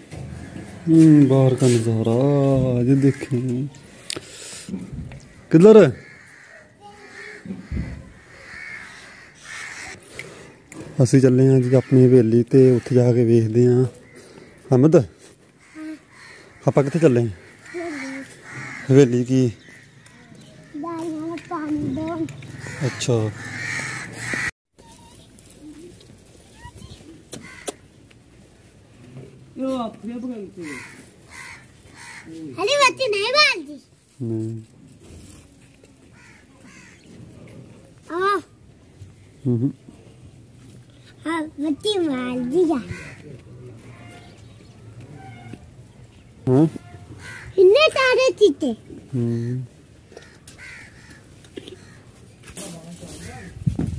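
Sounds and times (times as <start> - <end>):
crow cawing: 5.2 - 10.4, 11.5 - 13.0, 14.0 - 14.8, 15.5 - 21.8, 22.5 - 24.5, 27.3 - 27.9, 30.6 - 32.9, 36.1 - 37.2, 42.2 - 44.4, 46.9 - 48.2, 50.1 - 52.2.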